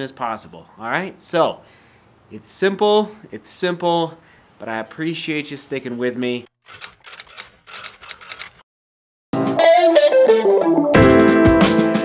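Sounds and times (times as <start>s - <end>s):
typewriter key clicks: 6.7s - 8.6s.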